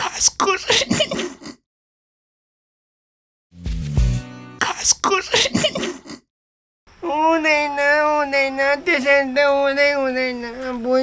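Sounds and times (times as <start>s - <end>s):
throaty comic vocal effect: 0.0s - 1.6s, 4.6s - 6.3s.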